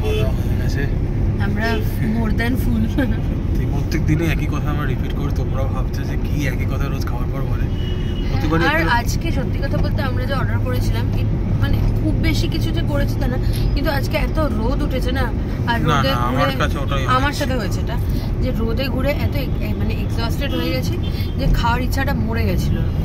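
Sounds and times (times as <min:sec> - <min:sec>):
voices talking: 0:07.5 - 0:22.8.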